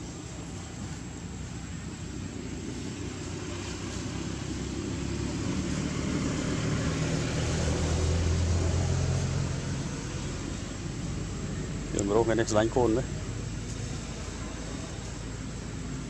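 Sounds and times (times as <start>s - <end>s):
steady background hiss: 0.0s - 16.0s
vehicle engine hum: 0.0s - 16.0s.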